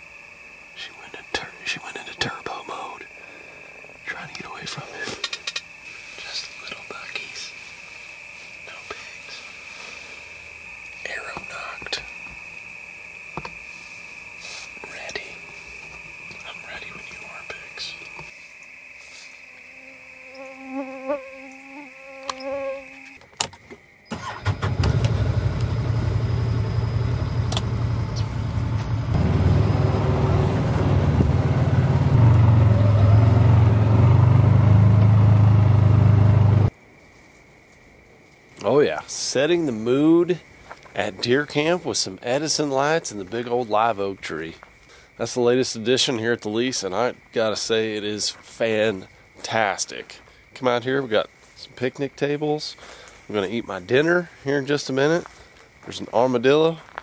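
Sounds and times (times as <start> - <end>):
vehicle engine rumble: 24.4 - 36.7
high-pitched whine: 25.4 - 36.7.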